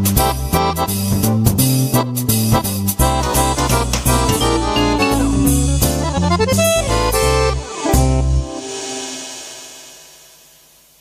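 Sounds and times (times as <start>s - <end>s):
keyboard accordion final chord: 3.0s - 9.2s
faint hiss: 9.0s - 11.0s.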